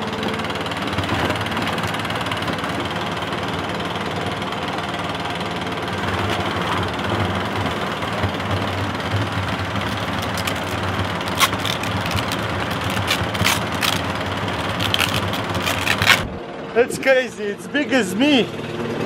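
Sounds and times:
leaf blower engine running: 0.0 - 19.0.

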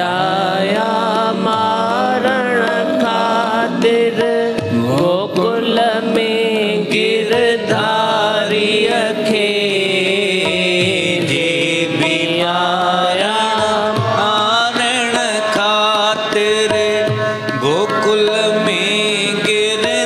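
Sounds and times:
instrumental accompaniment: 0.0 - 20.0
person singing devotional song: 0.0 - 20.0.

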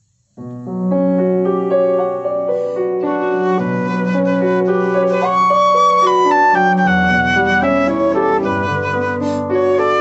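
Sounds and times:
piano accompaniment: 0.3 - 10.0.

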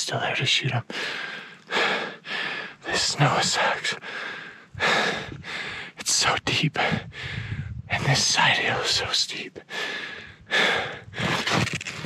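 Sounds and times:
man breathing hard: 0.9 - 2.9, 4.0 - 6.0, 6.8 - 7.9, 9.7 - 11.4.

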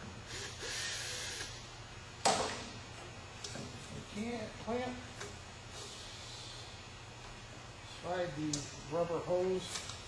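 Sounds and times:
low shop hum: 0.0 - 10.0.

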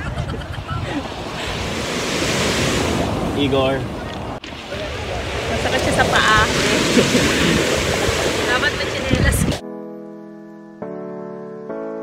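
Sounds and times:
wind on microphone: 0.0 - 9.6
surf breaking on pebbles: 1.1 - 9.6
slow sustained music: 9.6 - 12.0.

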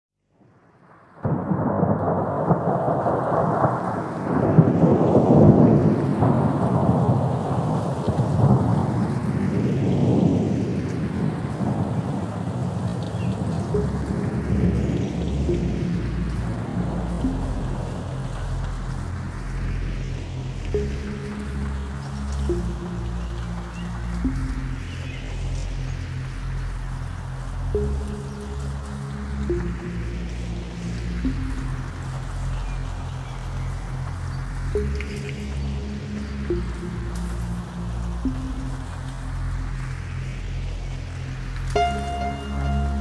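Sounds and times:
heavy rain: 0.9 - 43.0
rolling thunder: 1.0 - 21.5
low music notes: 13.0 - 43.0.

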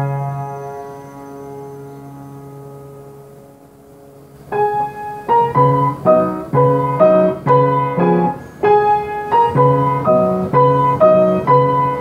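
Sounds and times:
piano chord ringing: 0.0 - 12.0.

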